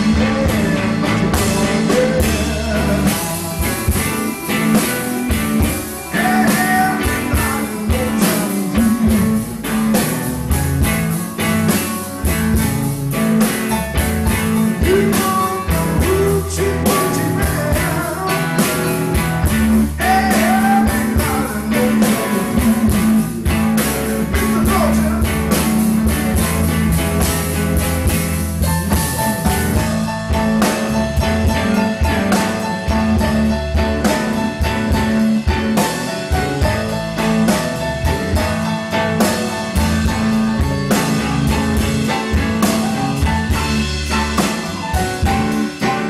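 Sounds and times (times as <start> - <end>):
blues band playing: 0.0 - 46.0
electric guitar sliding up: 0.0 - 46.0.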